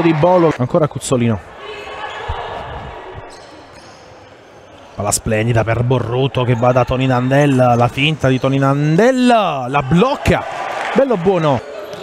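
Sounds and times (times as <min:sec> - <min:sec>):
sports hall hum: 0:00.0 - 0:12.0.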